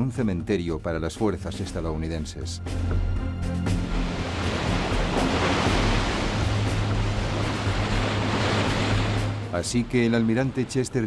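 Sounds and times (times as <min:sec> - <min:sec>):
rough sea breaking over bow: 0:02.7 - 0:11.0.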